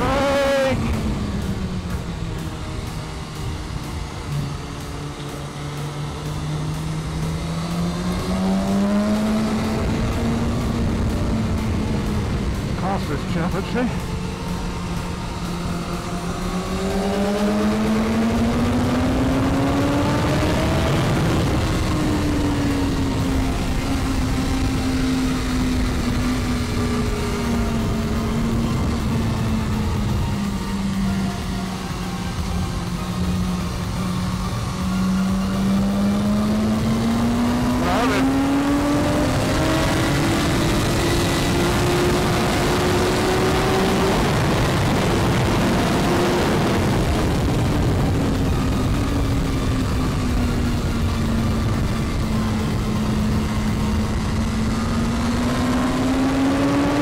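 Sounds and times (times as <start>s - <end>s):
heavy wind noise: 0.0s - 57.0s
motorcycle engine revving: 0.0s - 57.0s.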